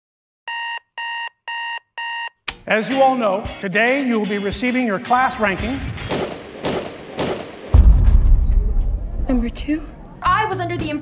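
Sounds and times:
high-pitched alarm beeps: 0:00.5 - 0:02.4.

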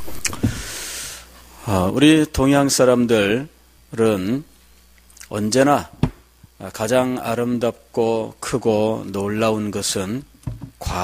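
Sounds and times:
man preaching: 0:01.6 - 0:04.5, 0:05.2 - 0:05.9, 0:06.6 - 0:10.2.

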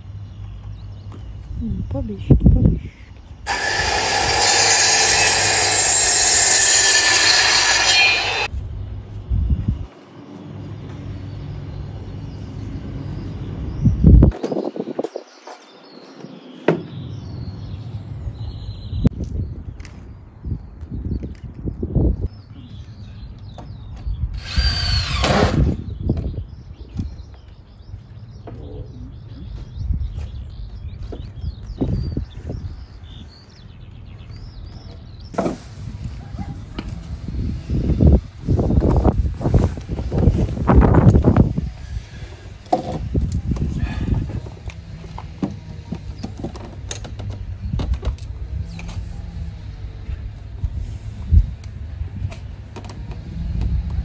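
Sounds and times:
cordless drill whirring: 0:03.5 - 0:08.5, 0:24.4 - 0:25.7
power tool running loudly: 0:03.5 - 0:08.5, 0:24.4 - 0:25.7.

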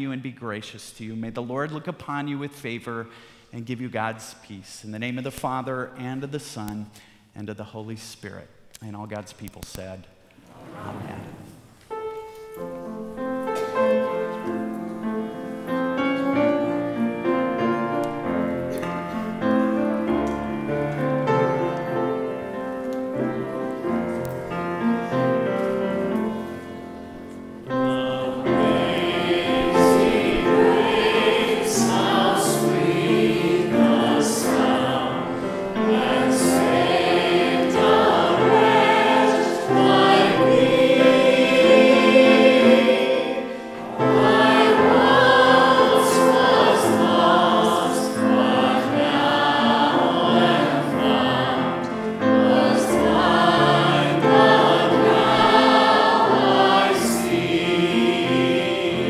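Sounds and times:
grand piano accompaniment: 0:10.6 - 0:59.0
man and woman singing: 0:27.7 - 0:43.5.

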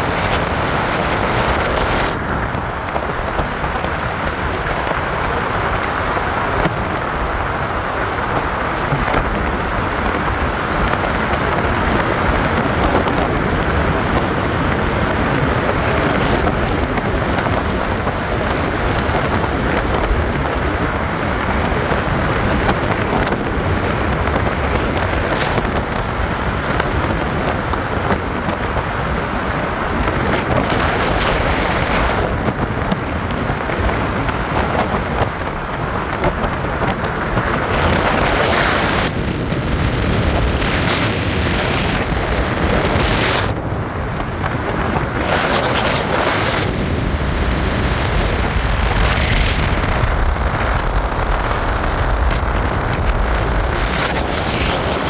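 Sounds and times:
airflow buffeting microphone: 0:00.0 - 0:55.0
rumbling wind and road noise: 0:00.0 - 0:55.0.

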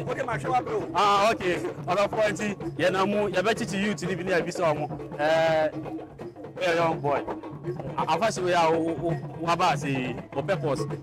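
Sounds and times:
men talking in a crowd: 0:00.0 - 0:11.0.

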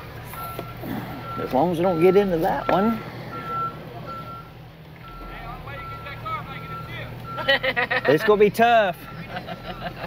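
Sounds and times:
truck reverse alarm beeping: 0:00.0 - 0:10.0.

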